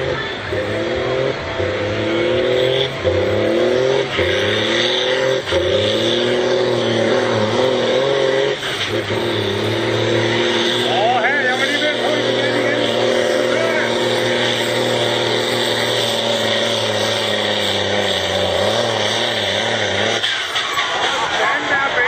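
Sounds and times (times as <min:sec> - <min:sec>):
tractor diesel engine drone: 0:00.0 - 0:22.0
voices: 0:10.2 - 0:16.2, 0:20.4 - 0:22.0.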